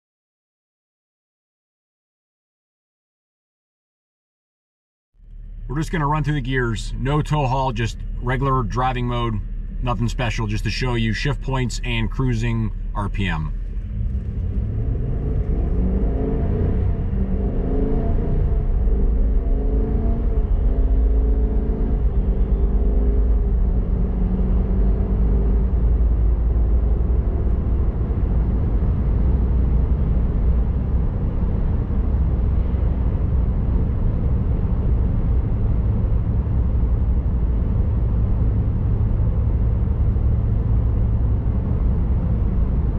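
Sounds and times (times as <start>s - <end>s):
road noise: 5.2s - 42.9s
truck engine accelerating: 5.2s - 42.9s.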